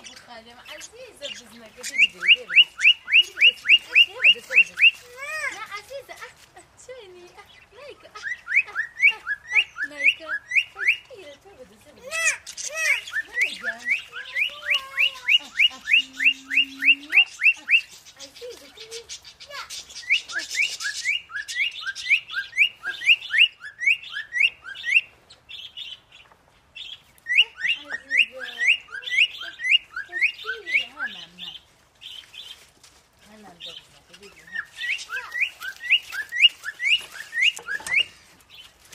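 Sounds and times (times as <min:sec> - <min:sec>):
bird whistled chirps: 0:19.9 - 0:25.1, 0:27.2 - 0:31.2, 0:34.5 - 0:38.2.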